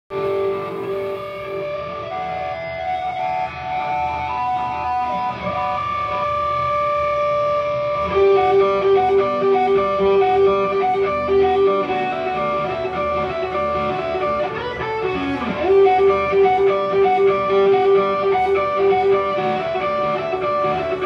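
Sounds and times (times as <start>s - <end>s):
ringing guitar notes: 0.1s - 21.0s
rock band playing: 0.1s - 21.0s.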